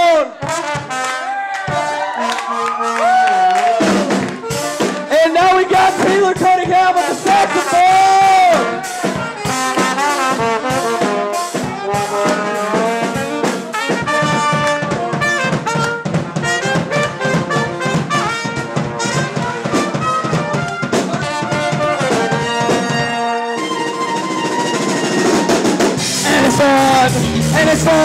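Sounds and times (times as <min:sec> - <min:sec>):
ska band drums and rhythm section: 0:00.0 - 0:28.0
trumpet solo: 0:00.0 - 0:28.0.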